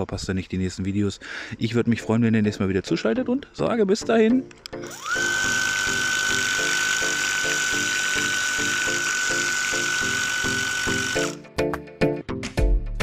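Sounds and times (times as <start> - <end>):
music: 1.2 - 13.0
sprayer pump whining: 4.8 - 11.4.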